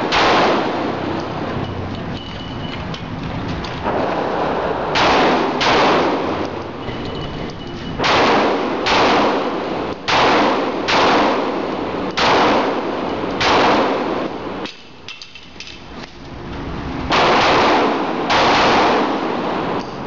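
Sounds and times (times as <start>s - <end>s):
pistol shots echoing: 0.0s - 1.1s, 3.8s - 6.5s, 8.0s - 15.0s, 17.1s - 19.8s.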